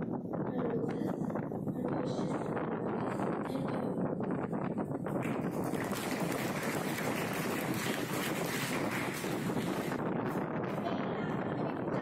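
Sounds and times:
audience clapping: 5.2 - 10.0.

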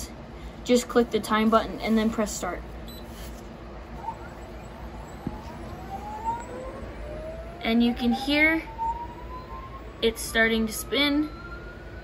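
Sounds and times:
motor whine rising in pitch: 3.9 - 10.0.

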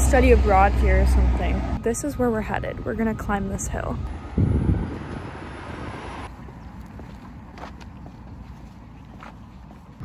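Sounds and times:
road traffic: 0.0 - 10.0
car passing by: 4.6 - 6.3.

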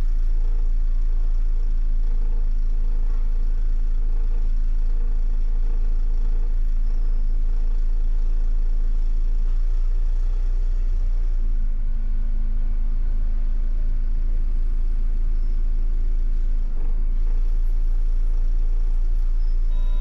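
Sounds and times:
bus engine rumbling: 9.4 - 20.0.

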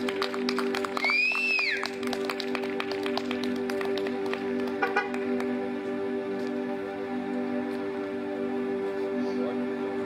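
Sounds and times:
synthesizer pad chord: 0.0 - 10.0.

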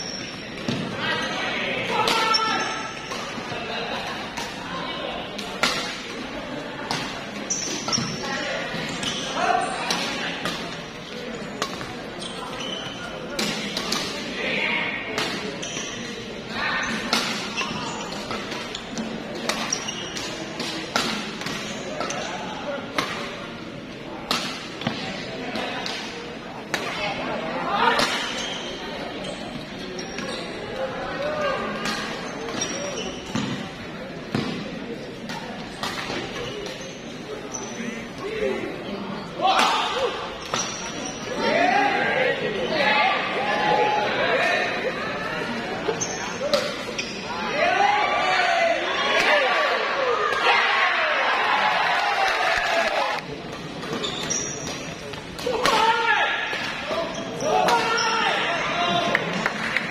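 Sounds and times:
crowd chatter: 0.0 - 59.9
rackets hitting shuttlecock: 5.3 - 6.2, 13.4 - 14.2, 16.9 - 22.3.

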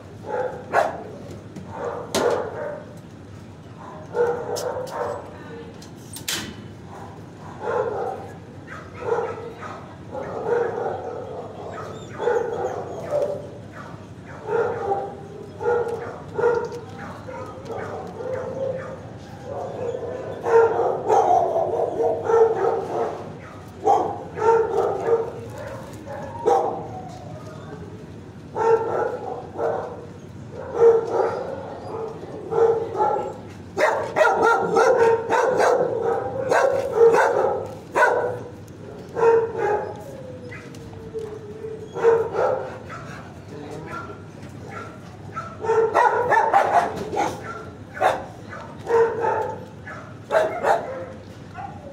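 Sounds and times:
dog barking: 0.2 - 2.9, 3.8 - 5.3, 6.9 - 27.0, 28.5 - 38.5, 39.1 - 40.7, 41.9 - 51.9.

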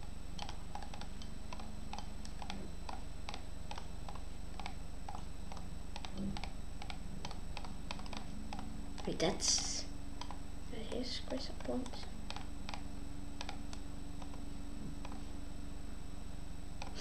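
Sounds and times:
computer mouse clicks: 0.4 - 10.4, 11.2 - 12.8, 13.4 - 14.4, 15.0 - 15.2.

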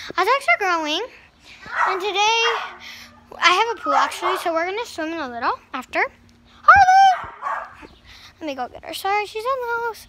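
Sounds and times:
dog barking high-pitched: 1.7 - 2.8, 3.7 - 4.6, 7.0 - 7.8.

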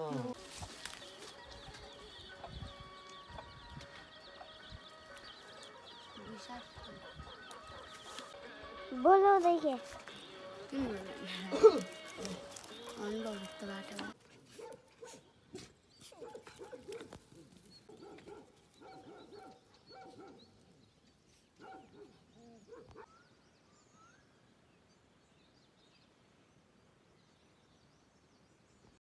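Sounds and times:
dogs whining and yelping: 22.6 - 23.2.

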